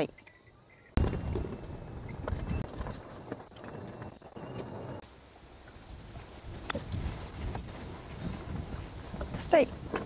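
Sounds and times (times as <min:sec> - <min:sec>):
wind buffeting microphone: 0:05.8 - 0:10.0.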